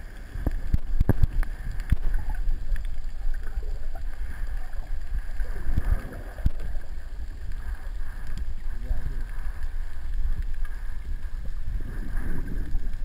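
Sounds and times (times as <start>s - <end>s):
sharp underwater clicks: 0.0s - 13.0s
underwater rumble of moving water: 0.0s - 13.0s.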